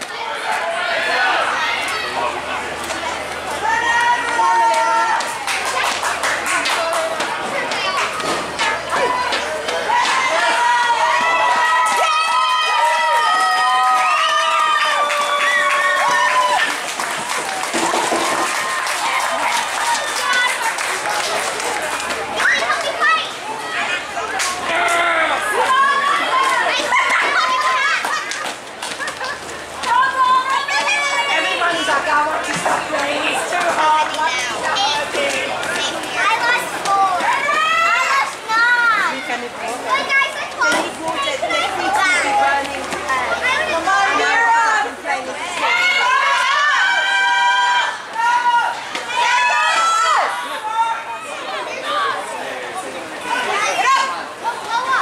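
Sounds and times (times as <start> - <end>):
children shouting: 0.0 - 55.0
spectators clapping: 2.8 - 23.2
girls shouting and calling out: 29.0 - 35.2.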